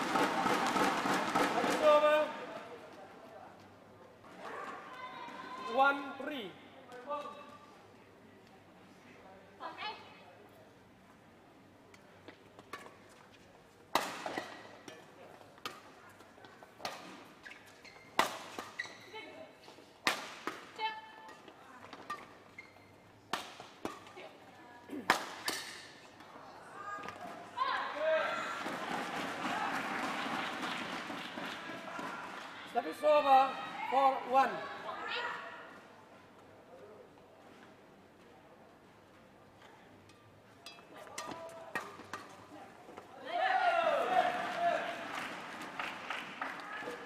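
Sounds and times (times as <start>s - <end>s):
racket hitting shuttlecock: 13.9s - 15.0s, 18.1s - 18.9s, 20.0s - 22.5s, 23.3s - 24.2s, 24.9s - 26.0s, 40.7s - 42.4s
crowd cheering and clapping: 28.1s - 33.0s, 43.5s - 47.0s.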